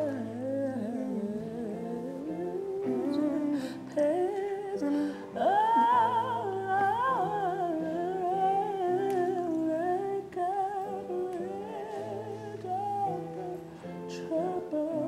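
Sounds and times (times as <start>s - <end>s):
young man singing wordless melody: 0.0s - 15.0s.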